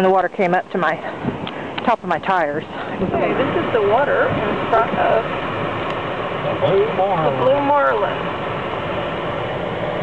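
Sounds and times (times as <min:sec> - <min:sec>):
car running inside cabin: 0:01.2 - 0:10.0.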